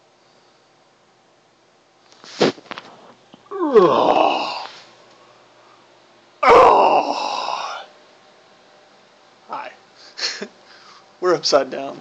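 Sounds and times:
man groaning: 3.5s - 4.7s, 6.4s - 7.9s.

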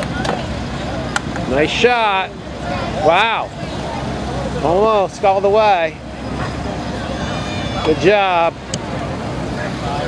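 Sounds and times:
faint distant voices: 0.0s - 10.0s
outdoor rumble and hiss: 0.0s - 10.0s.

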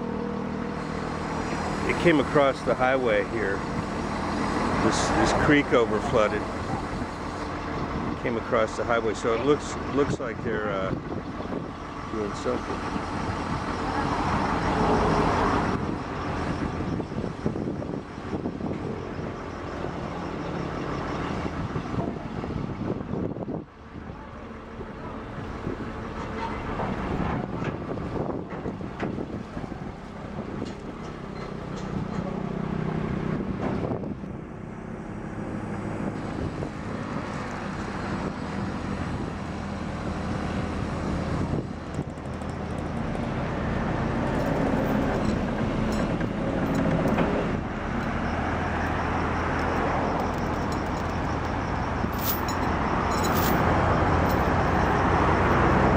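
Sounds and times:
excavator diesel engine: 0.0s - 55.9s.

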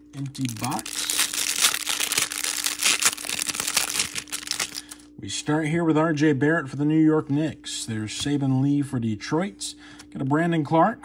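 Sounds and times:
plastic wrapper crinkling: 0.2s - 5.0s.

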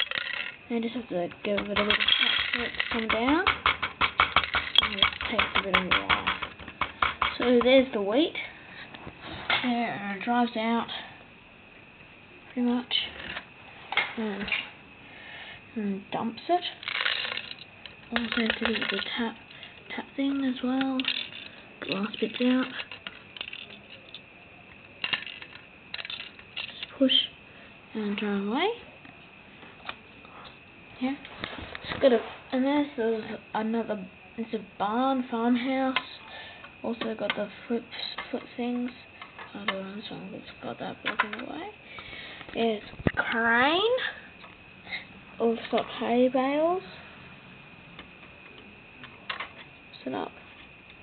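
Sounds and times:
plastic toy bricks clicking: 0.0s - 0.6s, 1.5s - 7.6s, 16.8s - 19.3s, 20.3s - 24.2s, 25.0s - 26.9s.

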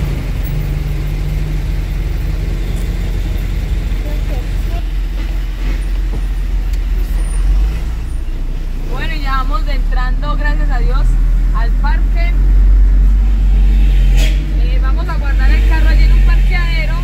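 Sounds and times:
diesel truck engine rumble: 0.0s - 17.0s.

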